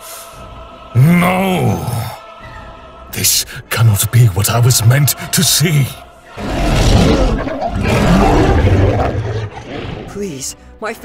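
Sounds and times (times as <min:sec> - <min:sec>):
monster roaring: 0:06.4 - 0:10.2.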